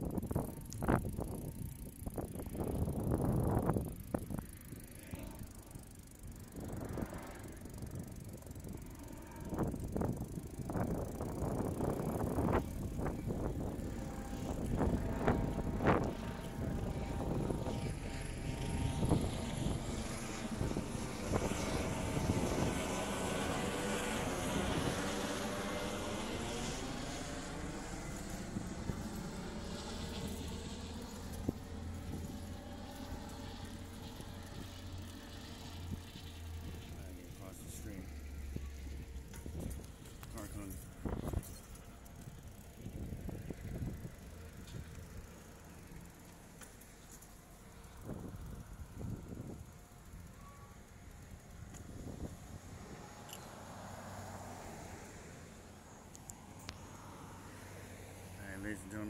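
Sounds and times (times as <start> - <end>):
helicopter passing overhead: 0.0 - 59.0.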